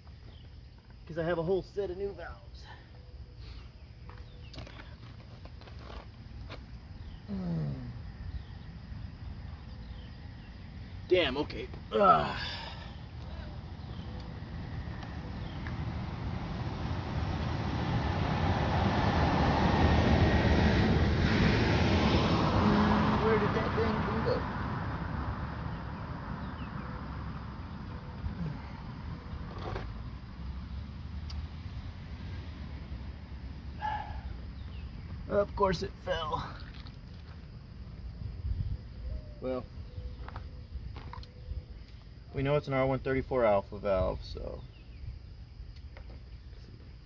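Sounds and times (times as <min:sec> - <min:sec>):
vehicle passing by: 0:13.7 - 0:34.3.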